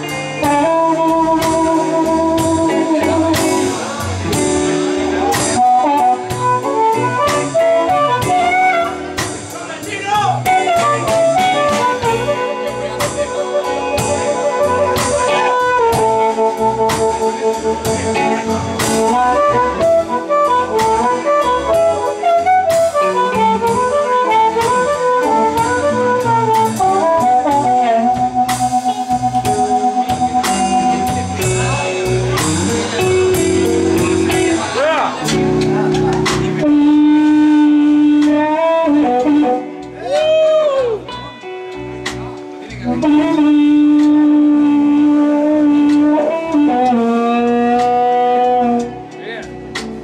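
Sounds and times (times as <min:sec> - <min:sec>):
amplified blues harmonica solo: 0:00.0 - 0:03.7, 0:05.0 - 0:09.3, 0:10.1 - 0:35.2, 0:36.6 - 0:41.6, 0:42.8 - 0:49.1
blues band playing: 0:00.0 - 0:50.0
electric guitar: 0:00.0 - 0:50.0.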